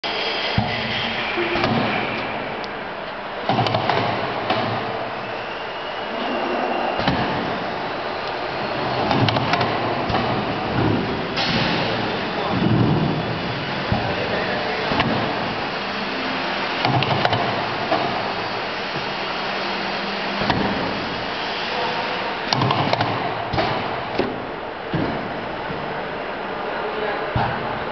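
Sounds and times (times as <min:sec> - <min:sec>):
printing press mechanical din: 0:00.1 - 0:26.0
machine clicks and knocks: 0:03.5 - 0:04.8, 0:09.0 - 0:11.7, 0:16.8 - 0:18.1, 0:22.5 - 0:25.2.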